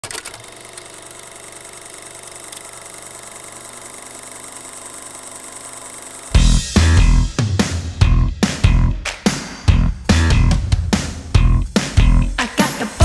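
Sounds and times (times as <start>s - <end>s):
small machine rattling: 0.0s - 6.4s.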